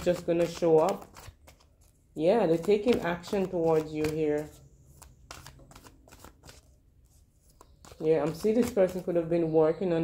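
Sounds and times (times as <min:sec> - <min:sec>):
cards being shuffled: 0:00.0 - 0:09.1.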